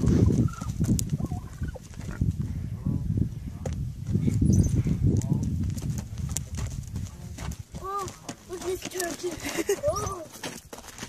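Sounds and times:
turkey gobbling: 0:00.3 - 0:02.2.

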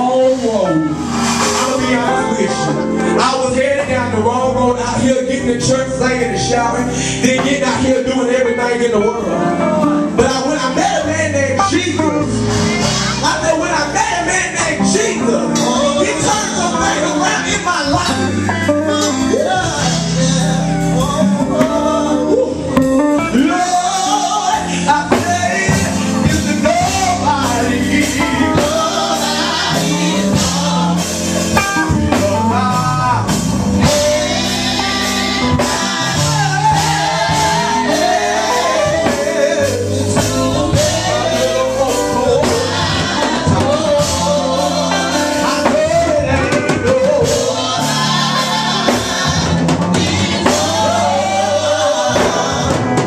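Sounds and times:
gospel band playing: 0:00.0 - 0:53.0
person singing: 0:00.0 - 0:53.0
sustained bass line: 0:00.0 - 0:53.0.

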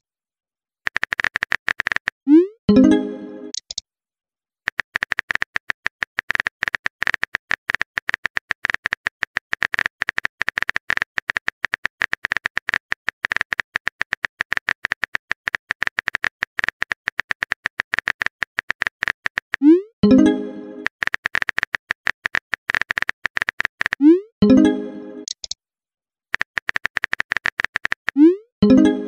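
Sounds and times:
phone keyboard typing clicks: 0:00.9 - 0:02.2, 0:02.8 - 0:03.8, 0:04.7 - 0:25.6, 0:26.4 - 0:29.0.

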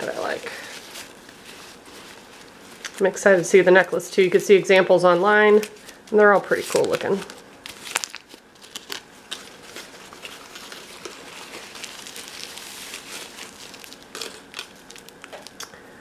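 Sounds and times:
paper towel rustling: 0:00.0 - 0:04.4, 0:05.1 - 0:14.1
aluminium foil crinkling: 0:00.0 - 0:15.8.

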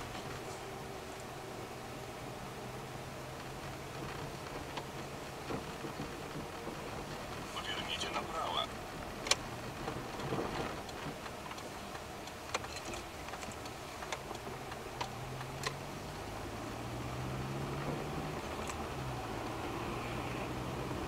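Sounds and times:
low engine hum: 0:00.0 - 0:21.0
road rumble in car cabin: 0:00.0 - 0:21.0
interior rattle clicks: 0:09.1 - 0:15.8.

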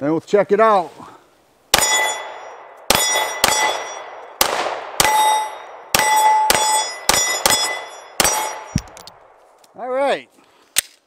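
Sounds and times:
pistol shots: 0:01.7 - 0:09.2
steel plate target ringing: 0:01.8 - 0:04.2, 0:05.0 - 0:09.0.

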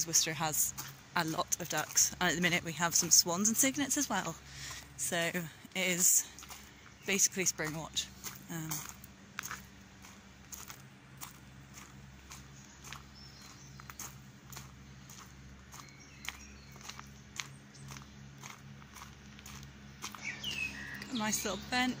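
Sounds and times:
footsteps on gravel path: 0:00.0 - 0:22.0
faint bird chirps: 0:20.1 - 0:21.7.

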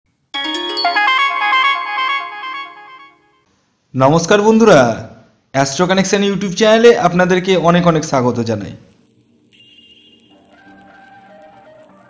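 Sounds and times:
electronic musical jingle: 0:00.4 - 0:03.4, 0:09.6 - 0:12.0.

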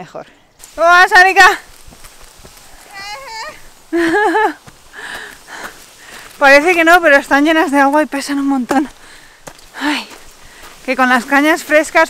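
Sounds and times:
woman laughing high-pitched: 0:02.9 - 0:04.6.

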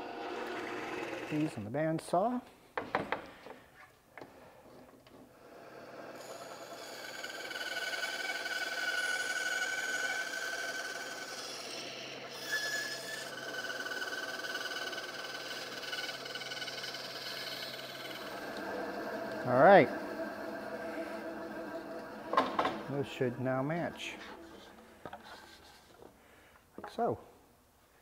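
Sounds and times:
bandsaw cutting wood: 0:00.0 - 0:01.5, 0:05.6 - 0:25.7.

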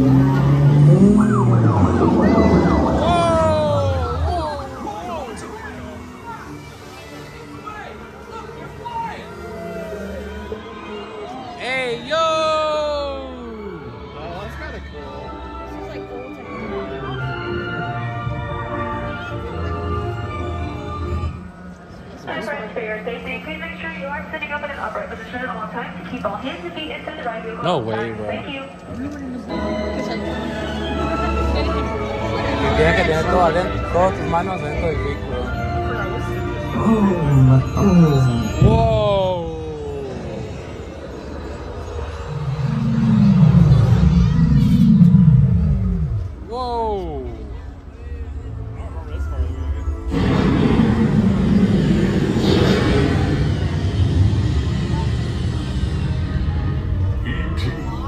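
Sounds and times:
ominous music from speakers: 0:00.0 - 0:11.6, 0:13.3 - 0:58.0
heavy low rumble: 0:37.6 - 0:46.5, 0:50.0 - 0:58.0
sharp rising-and-falling cry: 0:39.2 - 0:46.4.

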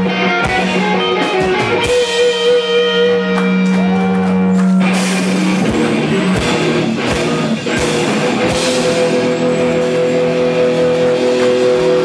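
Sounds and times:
electric guitars ringing chord: 0:00.0 - 0:12.0.

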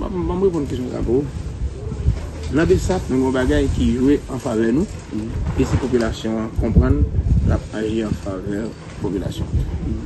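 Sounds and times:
man talking in a gravelly voice: 0:00.0 - 0:01.4, 0:02.5 - 0:10.0
low rumbling noise: 0:00.0 - 0:10.0.

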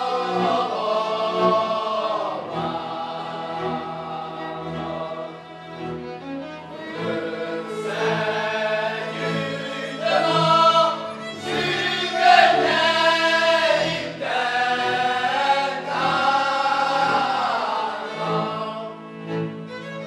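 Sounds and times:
men singing a folk song: 0:00.0 - 0:05.6, 0:06.8 - 0:19.4.

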